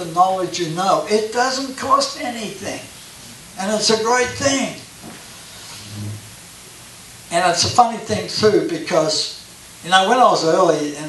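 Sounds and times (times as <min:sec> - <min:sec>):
faint low hum: 0:00.0 - 0:11.0
microphone hiss: 0:00.0 - 0:11.0.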